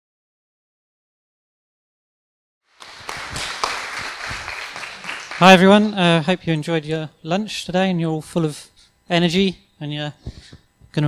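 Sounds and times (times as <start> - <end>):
audience applause: 2.7 - 6.1.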